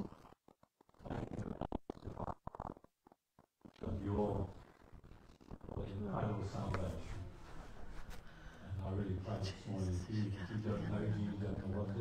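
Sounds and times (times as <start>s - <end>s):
faint murmured prayer: 5.7s - 12.0s.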